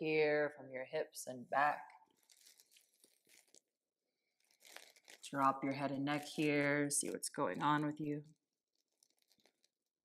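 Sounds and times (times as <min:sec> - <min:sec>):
faint soft ticks and rustles: 0:08.7 - 0:09.9.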